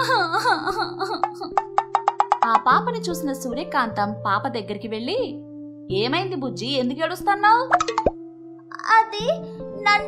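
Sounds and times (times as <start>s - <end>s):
light background music: 0.0s - 10.0s
plop sound effect: 7.7s - 8.2s.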